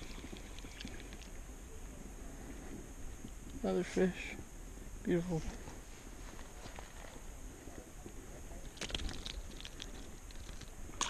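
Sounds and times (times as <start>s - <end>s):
low rumble of handling noise: 0.0s - 11.0s.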